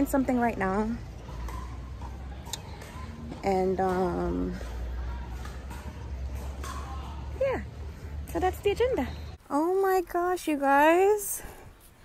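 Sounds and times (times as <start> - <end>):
low street rumble: 0.0 - 12.0.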